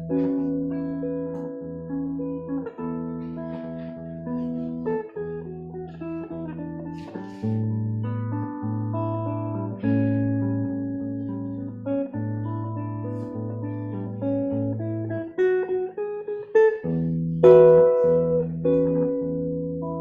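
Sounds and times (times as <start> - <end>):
solo guitar playing: 0.0 - 20.0.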